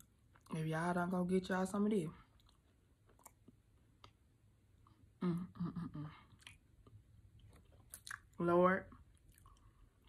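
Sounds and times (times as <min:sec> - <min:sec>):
faint chewing: 0:02.2 - 0:04.2, 0:06.2 - 0:10.0.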